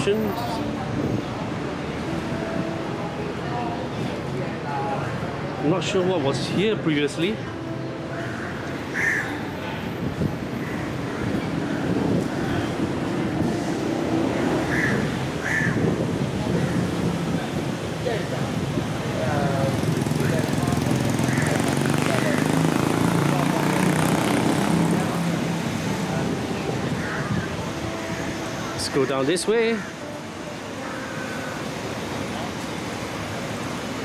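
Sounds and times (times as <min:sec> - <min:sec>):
steady traffic: 0:00.0 - 0:34.0.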